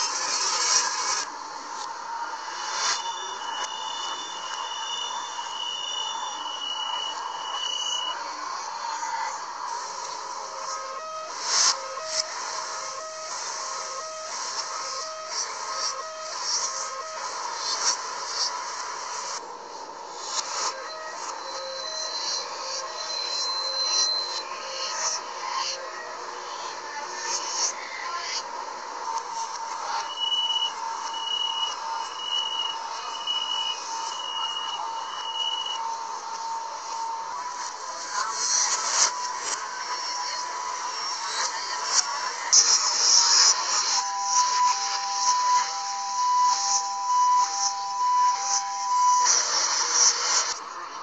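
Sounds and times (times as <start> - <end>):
reversed two-pitch warning beeps: 0.0 - 19.4, 20.2 - 50.6
reversed door warning beeps: 2.5 - 8.2, 29.4 - 37.0, 42.8 - 50.6.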